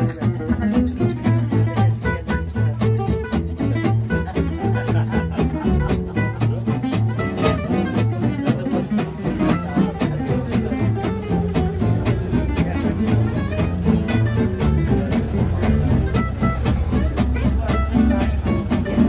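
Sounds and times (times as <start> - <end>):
acoustic guitars chopping rhythm: 0.0 - 19.0
upright bass notes: 0.0 - 19.0.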